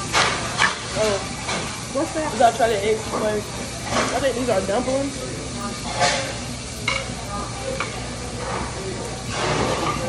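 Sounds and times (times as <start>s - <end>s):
food sizzling: 0.0s - 10.0s.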